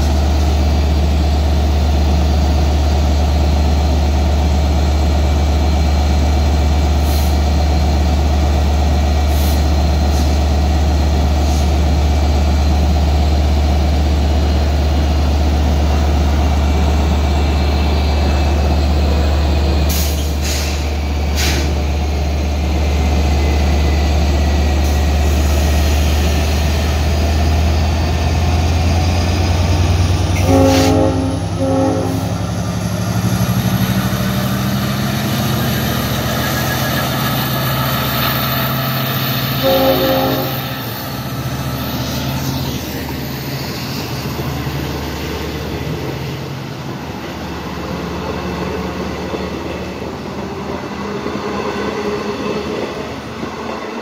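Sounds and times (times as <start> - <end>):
diesel locomotive engine humming: 0.0 - 54.0
train horn blasts: 30.4 - 32.5, 39.6 - 41.0.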